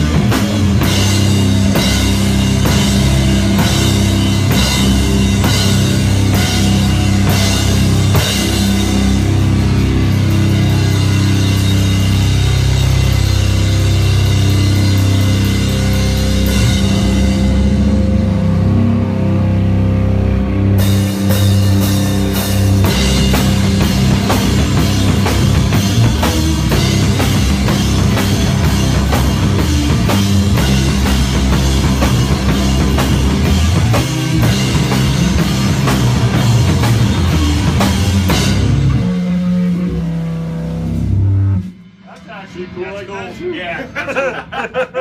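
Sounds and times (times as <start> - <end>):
drums and cymbals crashing: 0.0 - 17.8, 20.8 - 45.0
droning electric guitars and bass: 0.0 - 45.0.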